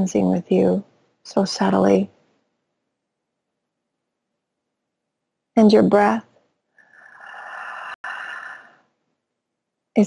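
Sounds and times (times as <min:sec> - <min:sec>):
woman breathing: 0:06.7 - 0:09.0.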